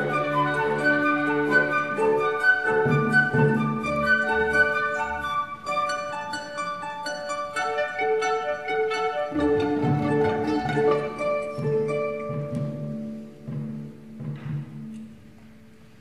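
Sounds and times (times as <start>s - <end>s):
flute short notes: 0.0s - 6.6s
chamber orchestra playing: 0.0s - 15.1s
bowed strings: 0.0s - 15.8s.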